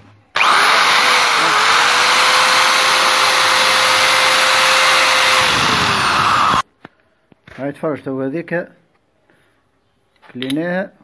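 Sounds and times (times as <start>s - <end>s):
rotary tool grinding steel: 0.4s - 6.6s.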